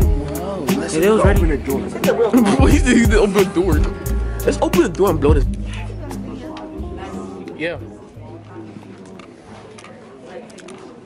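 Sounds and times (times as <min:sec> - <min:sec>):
faint music: 0:00.0 - 0:11.0
voices murmuring: 0:00.0 - 0:11.0.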